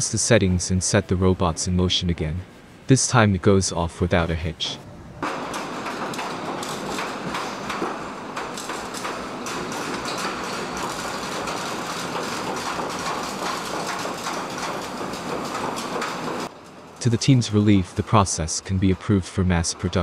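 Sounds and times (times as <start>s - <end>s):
quick clicks and clanks: 5.2s - 16.8s.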